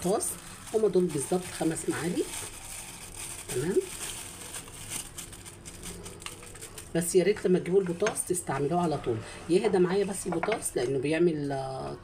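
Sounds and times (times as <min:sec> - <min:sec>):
crinkly plastic bag: 0:00.0 - 0:07.5.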